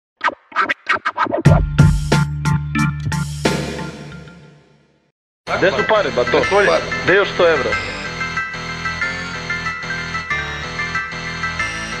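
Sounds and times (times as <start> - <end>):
turntable scratching: 0.2 - 1.7
hip hop beat: 0.2 - 4.4.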